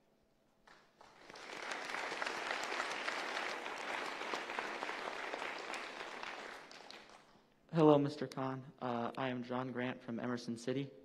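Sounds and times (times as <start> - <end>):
large audience applauding: 0.6 - 7.4.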